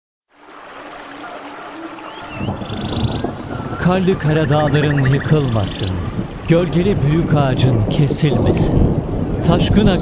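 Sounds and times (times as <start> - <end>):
waterfall splashing into pool: 0.3 - 3.5.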